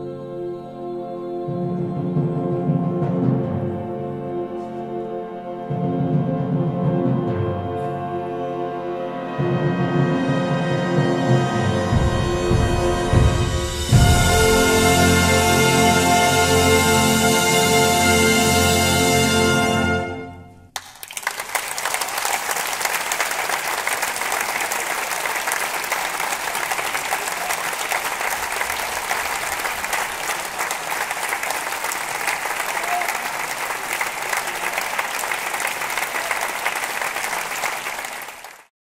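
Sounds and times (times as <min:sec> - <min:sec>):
audience applauding: 0:20.7 - 0:38.7.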